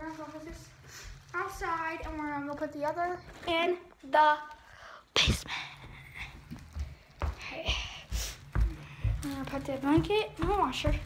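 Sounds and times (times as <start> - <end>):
footsteps walking: 0.0 - 4.7, 5.4 - 11.0.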